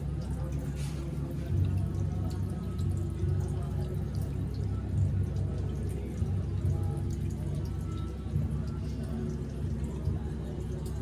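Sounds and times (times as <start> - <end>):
low devotional chant: 0.0 - 11.0
water trickling and dripping on stone: 0.0 - 11.0.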